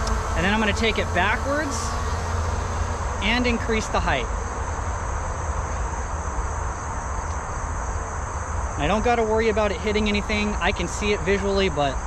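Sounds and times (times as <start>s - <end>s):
insects chirring: 0.0s - 12.0s
low constant rumble: 0.0s - 12.0s.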